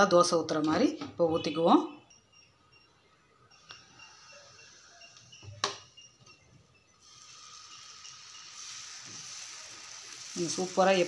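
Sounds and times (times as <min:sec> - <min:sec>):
batter sizzling on hot pan: 0:07.0 - 0:11.0.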